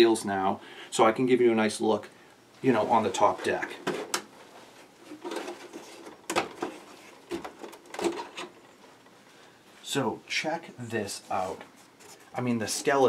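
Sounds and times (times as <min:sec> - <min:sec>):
handling noise: 0:02.7 - 0:09.4.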